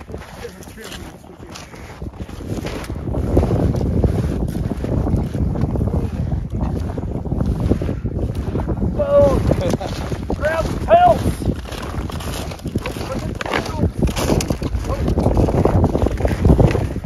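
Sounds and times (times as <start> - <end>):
snowshoe steps in deep snow: 0.0 - 5.4, 9.5 - 16.8
wind buffeting microphone: 0.0 - 17.0
person's voice: 10.4 - 11.5, 12.9 - 14.0.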